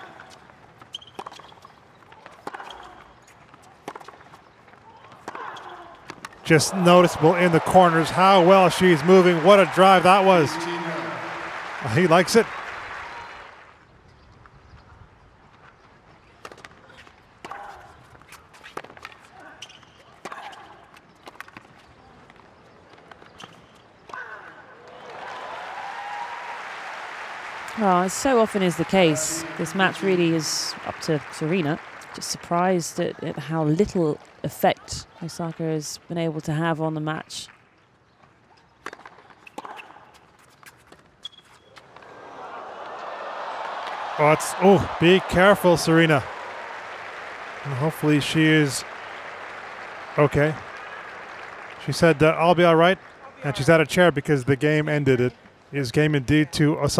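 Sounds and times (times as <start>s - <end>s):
shoe squeaks: 0.2s - 3.8s, 19.4s - 20.8s, 39.4s - 41.9s
crowd applause: 6.4s - 13.8s, 24.9s - 32.7s, 42.0s - 53.8s
crowd saying ooh: 6.5s - 13.6s, 27.6s - 31.1s, 42.0s - 50.2s.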